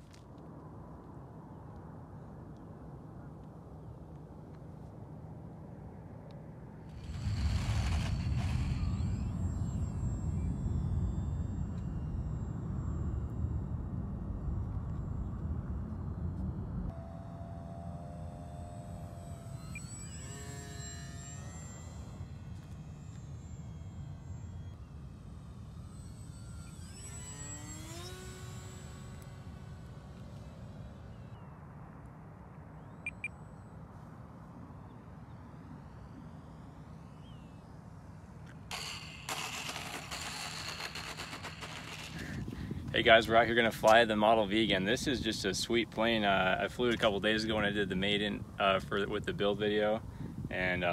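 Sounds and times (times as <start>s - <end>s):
model plane motor whine: 5.8s - 50.9s
plane wheels rolling on asphalt: 6.9s - 16.9s, 38.4s - 50.9s
wind rumble on microphone: 42.2s - 50.9s.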